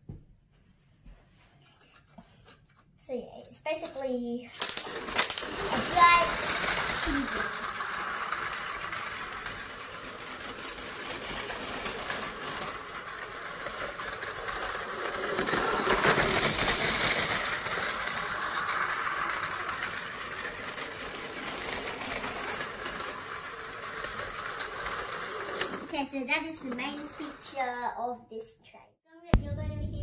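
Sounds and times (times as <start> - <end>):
toy train motor whirring: 3.8 - 27.8
wheels clicking on track: 4.6 - 25.9.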